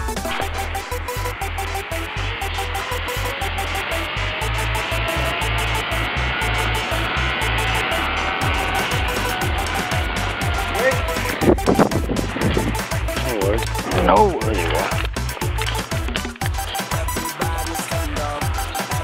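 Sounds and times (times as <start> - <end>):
loud burst: 0.0 - 14.0
zipline pulleys on steel cable: 0.2 - 19.0
wind buffeting microphone: 6.3 - 16.2.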